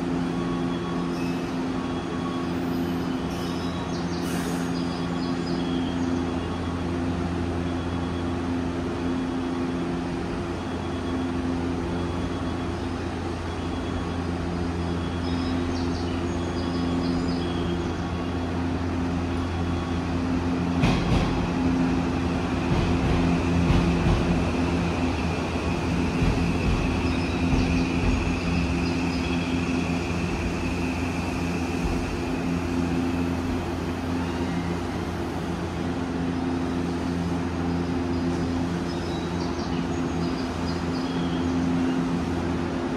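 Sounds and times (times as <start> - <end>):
train equipment humming: 0.0 - 42.9.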